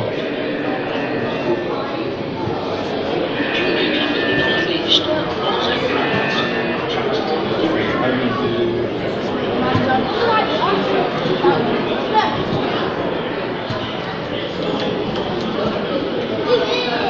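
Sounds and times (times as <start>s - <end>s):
faint music: 0.0s - 17.0s
indistinct chatter of voices: 0.0s - 17.0s.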